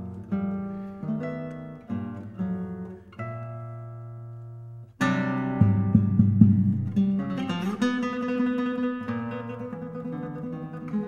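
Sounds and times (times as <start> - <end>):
classical guitar playing: 0.0 - 11.0.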